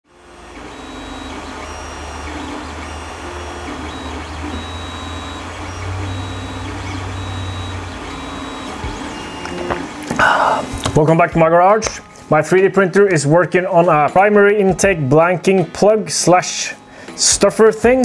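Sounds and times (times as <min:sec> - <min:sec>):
steady low hum: 0:00.1 - 0:10.9
stepper motors whining: 0:00.1 - 0:11.0.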